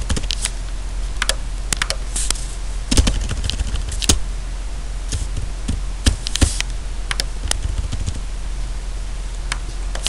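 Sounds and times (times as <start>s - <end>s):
low steady hum: 0.0s - 10.0s
keyboard typing: 2.9s - 4.2s, 6.1s - 8.2s.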